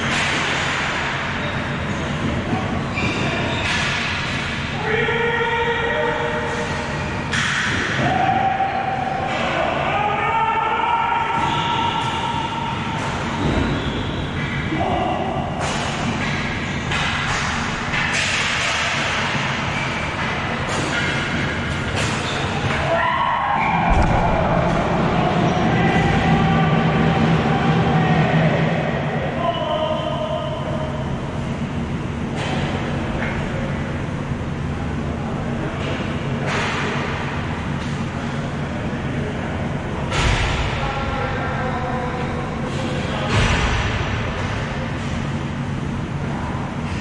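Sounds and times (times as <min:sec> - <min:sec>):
players shouting: 0:04.7 - 0:13.7, 0:22.5 - 0:31.0
hall rumble: 0:23.6 - 0:29.4
heavy thud: 0:23.9 - 0:26.1.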